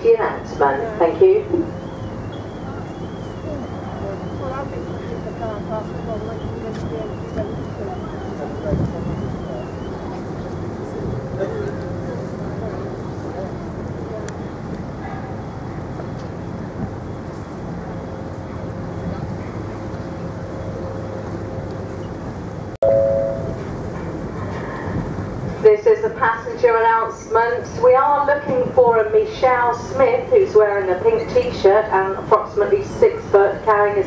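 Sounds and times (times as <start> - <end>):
ferry engines humming: 0.0 - 34.0
wind on microphone: 6.7 - 12.0
two-note chime: 22.8 - 23.6.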